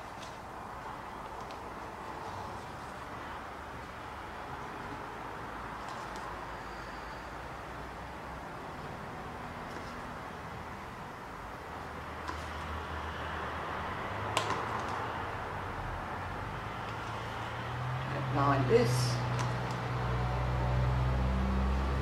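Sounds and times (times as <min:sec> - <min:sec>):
ceiling fans humming: 0:00.0 - 0:22.0.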